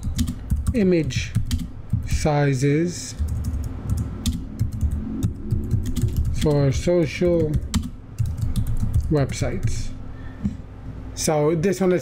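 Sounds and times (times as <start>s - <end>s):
computer keyboard typing: 0.0s - 2.3s, 3.1s - 9.9s
low hum: 0.0s - 11.2s.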